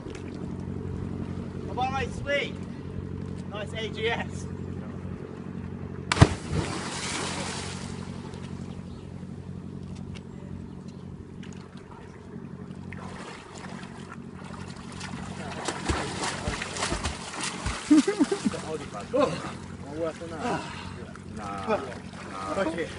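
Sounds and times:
steady low hum: 0.0s - 22.9s
heavy splash into water: 6.1s - 8.1s, 15.4s - 18.4s
swimming stroke splashes: 6.1s - 8.6s, 12.9s - 19.7s.

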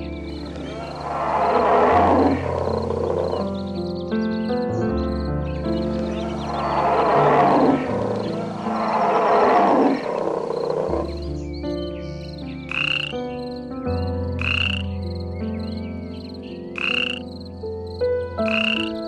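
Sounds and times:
background music: 0.0s - 19.0s
loud rough animal call: 0.2s - 3.8s, 6.0s - 11.4s
short high animal calls: 0.4s - 3.5s, 6.1s - 11.2s.

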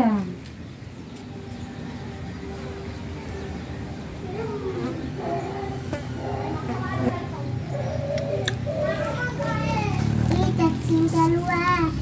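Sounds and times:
faint children's voices: 0.0s - 12.0s.

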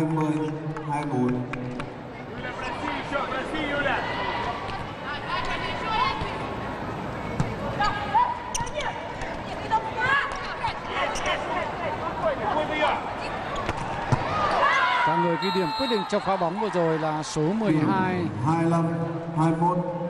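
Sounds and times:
crowd voices and shouts: 0.0s - 19.9s.

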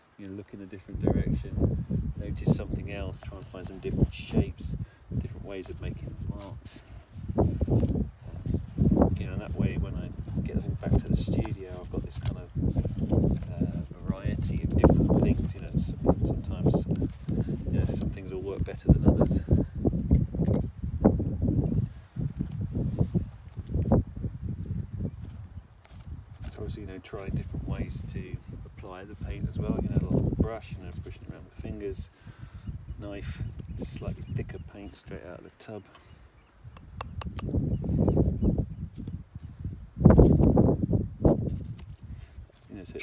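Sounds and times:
wind buffeting microphone: 0.7s - 35.4s, 36.1s - 43.0s.

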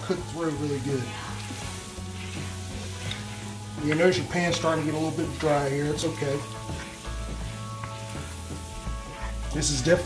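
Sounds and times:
background music: 0.0s - 10.0s
food sizzling in a skillet: 0.0s - 10.0s
spoon stirring in a skillet: 0.0s - 10.0s.

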